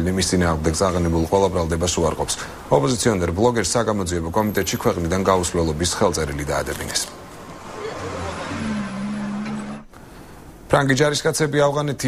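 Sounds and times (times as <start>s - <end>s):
vehicle engine hum: 4.4s - 10.0s.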